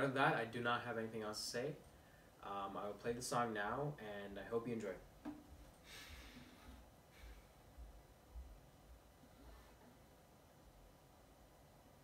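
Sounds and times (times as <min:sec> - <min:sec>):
faint breath: 0:01.9 - 0:02.4, 0:05.8 - 0:07.6.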